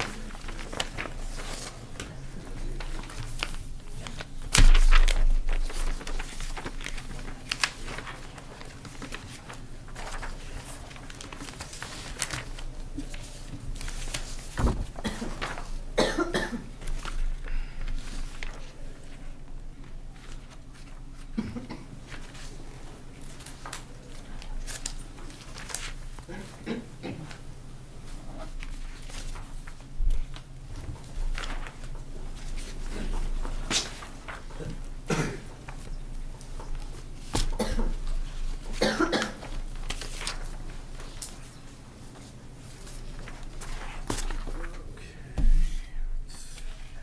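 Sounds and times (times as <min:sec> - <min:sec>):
papers being handled: 0:00.0 - 0:21.4, 0:22.0 - 0:45.7
person coughing: 0:14.9 - 0:16.8, 0:21.4 - 0:22.0, 0:26.3 - 0:27.4, 0:35.1 - 0:35.6, 0:37.5 - 0:38.0, 0:38.8 - 0:39.5.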